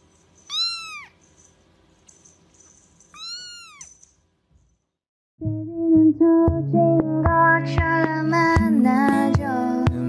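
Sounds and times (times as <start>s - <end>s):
kitten meowing: 0.5s - 1.2s, 3.1s - 3.9s.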